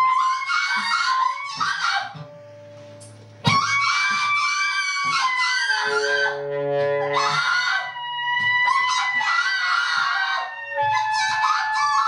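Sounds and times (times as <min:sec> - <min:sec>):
piercing high held note: 0:00.0 - 0:12.0
quiet low drone: 0:01.2 - 0:09.3.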